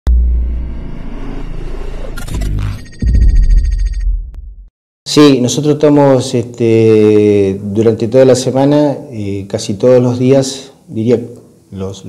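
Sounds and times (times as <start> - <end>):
deep bass hit: 0.1 - 2.0
low rumble: 0.1 - 2.2.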